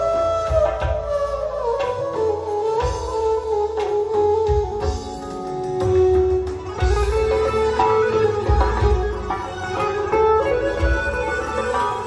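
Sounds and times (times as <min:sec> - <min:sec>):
electric guitar: 0:00.0 - 0:12.0
flute-like melody: 0:00.0 - 0:12.0
keyboard: 0:00.0 - 0:12.0.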